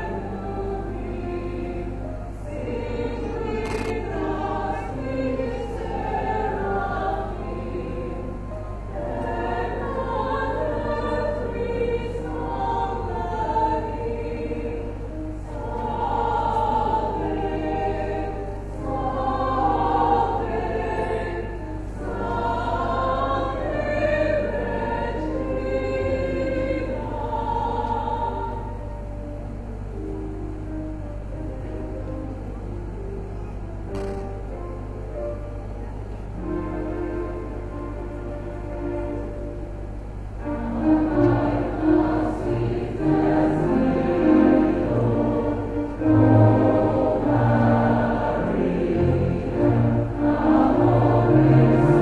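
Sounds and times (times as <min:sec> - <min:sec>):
mixed choir singing a hymn: 0:00.0 - 0:29.3, 0:40.4 - 0:52.0
steady low hum: 0:00.0 - 0:52.0.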